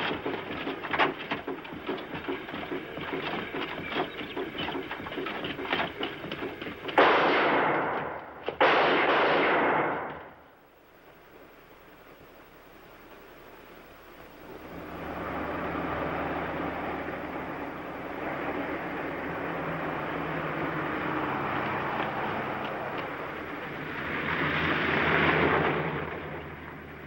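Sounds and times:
road noise: 0.0 - 8.6, 10.0 - 27.0
vehicle engine hum: 0.0 - 8.6, 10.0 - 27.0.

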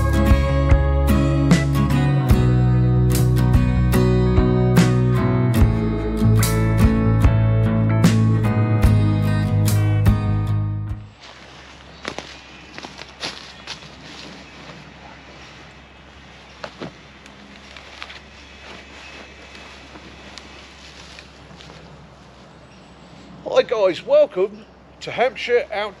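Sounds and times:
footsteps in dry leaves: 11.1 - 23.3
twigs snapping: 11.2 - 15.0, 16.4 - 21.9.

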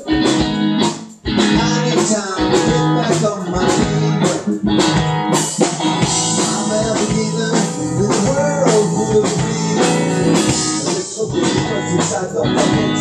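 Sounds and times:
rock-reggae band playing: 0.0 - 13.0.

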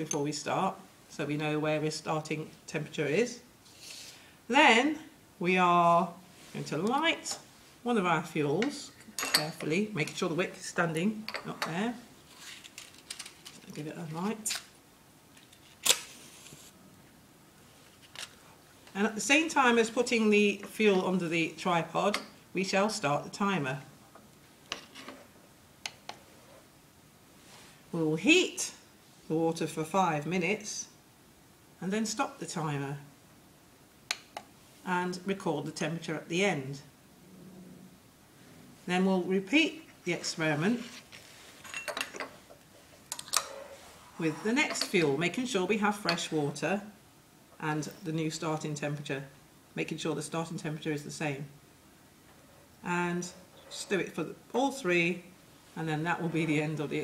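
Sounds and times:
glass clinking on bench: 9.0 - 9.6, 41.6 - 42.3.

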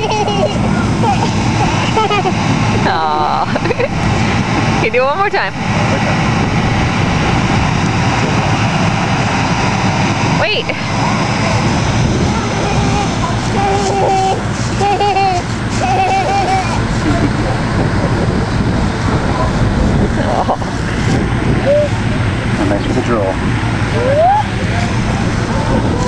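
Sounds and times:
wind rumble on microphone: 0.0 - 26.0.

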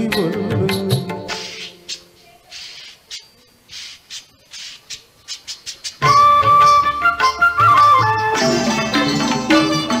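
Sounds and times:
song backing music: 0.0 - 1.7, 6.0 - 10.0
short hissing bursts: 1.3 - 6.0.

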